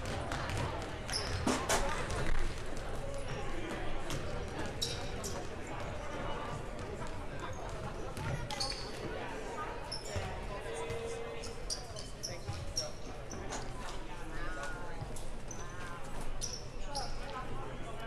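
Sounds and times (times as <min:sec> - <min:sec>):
chatter of voices: 0:00.0 - 0:18.0.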